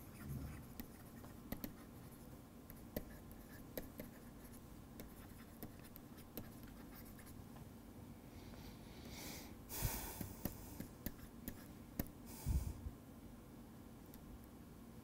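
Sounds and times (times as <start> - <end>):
low room hiss: 0.0 - 15.0.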